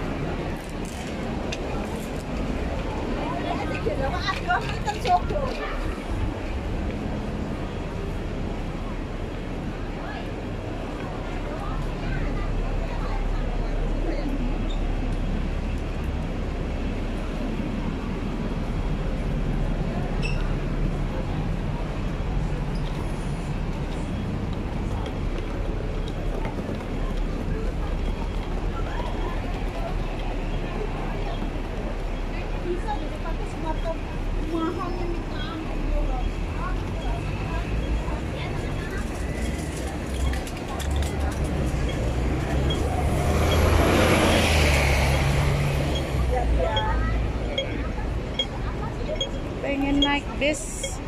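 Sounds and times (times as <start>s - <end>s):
crowded sidewalk noise: 0.0s - 51.0s
low rumble of road traffic: 0.0s - 51.0s
pedestrian crossing signal ticking: 41.4s - 43.9s, 45.4s - 51.0s.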